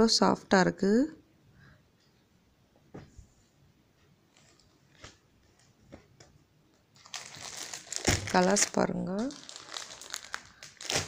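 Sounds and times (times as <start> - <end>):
plastic packaging crinkling: 7.0 - 11.0.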